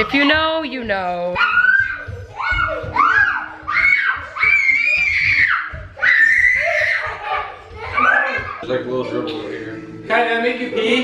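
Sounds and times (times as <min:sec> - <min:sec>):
toddler squealing: 0:01.4 - 0:08.6.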